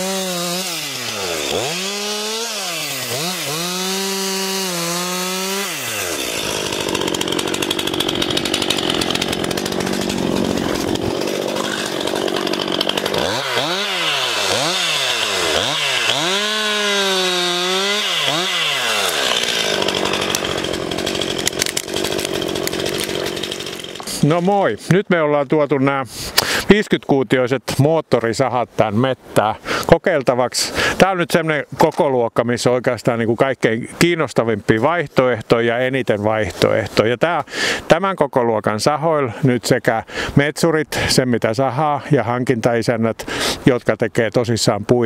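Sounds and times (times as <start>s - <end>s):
chainsaw engine revving: 0.0s - 24.5s
chainsaw cutting through trunk: 0.0s - 25.0s.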